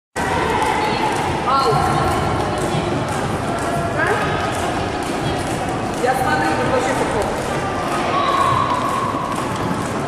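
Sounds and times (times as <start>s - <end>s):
girls talking: 0.2s - 8.8s.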